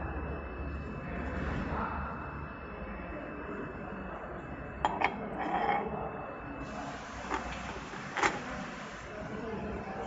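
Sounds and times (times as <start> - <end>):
labeling machine humming: 6.6 - 10.0.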